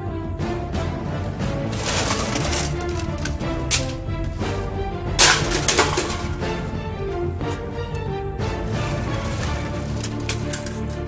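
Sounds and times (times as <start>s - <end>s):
music playing: 0.0s - 11.0s
computer parts being smashed: 1.7s - 4.5s, 5.2s - 6.6s, 9.0s - 11.0s.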